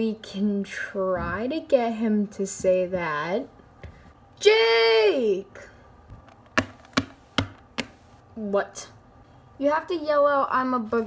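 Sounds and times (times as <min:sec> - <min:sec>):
plastic toy tapping on table: 0:06.3 - 0:08.0.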